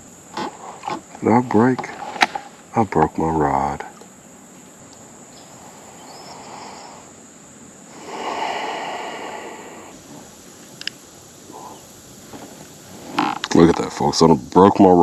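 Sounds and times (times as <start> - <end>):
river ambience: 0.0 - 15.0
soft rushing swell: 5.4 - 10.3
small click: 10.8 - 11.0.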